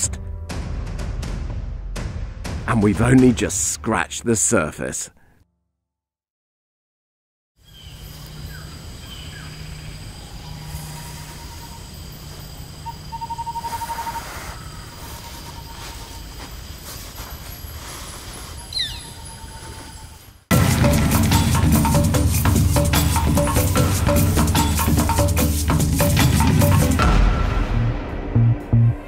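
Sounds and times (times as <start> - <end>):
birds calling: 7.6 - 20.4
percussive music: 20.5 - 29.0.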